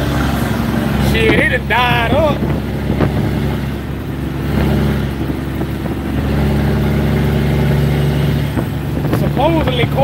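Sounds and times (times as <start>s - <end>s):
diesel truck engine droning: 0.0s - 10.0s
road noise: 0.0s - 10.0s.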